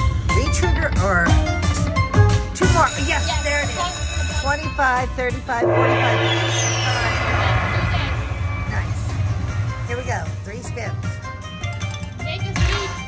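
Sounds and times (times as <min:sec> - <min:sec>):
slot machine chiming tones: 0:05.6 - 0:08.6
electronic jingle with falling sweep: 0:05.6 - 0:08.8.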